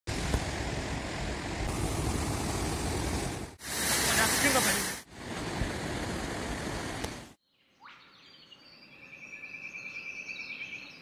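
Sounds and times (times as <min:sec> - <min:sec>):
ocean surf breaking: 0:00.1 - 0:07.4
waterfall splashing onto sand: 0:01.7 - 0:07.2.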